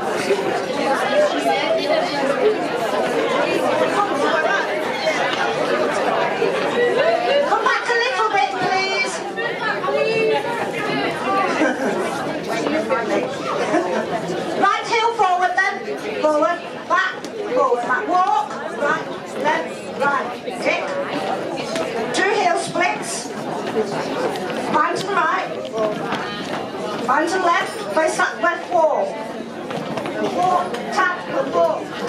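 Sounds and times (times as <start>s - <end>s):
overlapping voices chatting: 0.0s - 32.0s.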